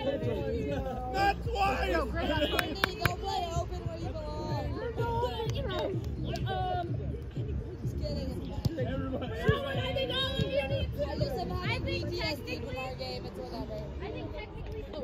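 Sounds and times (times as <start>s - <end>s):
background chatter of voices: 0.0s - 15.0s.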